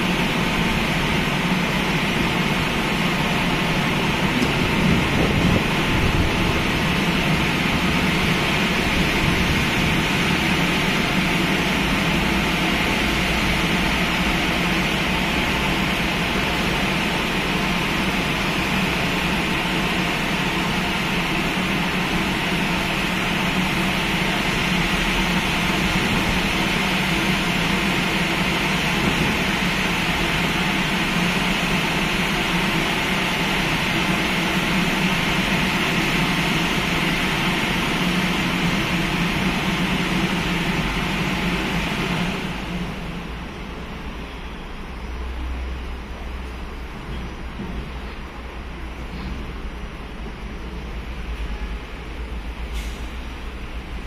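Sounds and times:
car wash machinery rushing: 0.0 - 44.9, 45.5 - 54.0.

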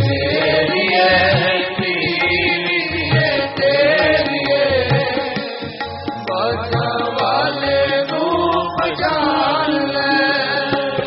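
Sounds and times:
voices chanting a devotional hymn: 0.0 - 11.0.

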